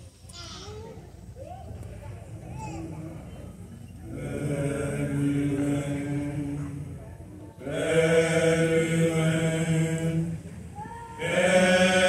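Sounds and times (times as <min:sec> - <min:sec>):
men's choir singing a hymn: 0:04.0 - 0:07.0, 0:07.6 - 0:12.0.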